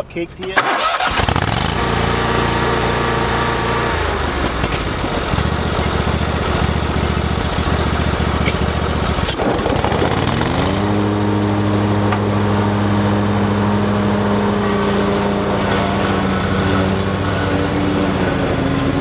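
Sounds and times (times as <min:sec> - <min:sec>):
mower engine running unevenly: 0:00.4 - 0:19.0.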